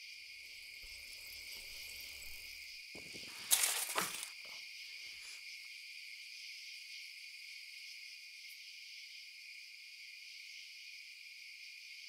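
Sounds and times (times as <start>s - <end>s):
crickets chirring: 0.0s - 12.0s
faint rustling: 1.6s - 4.6s.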